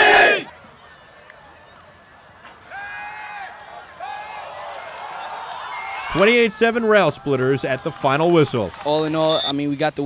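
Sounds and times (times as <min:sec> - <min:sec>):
drawn-out shouts: 0:00.0 - 0:00.5
faint field ambience: 0:00.0 - 0:10.0.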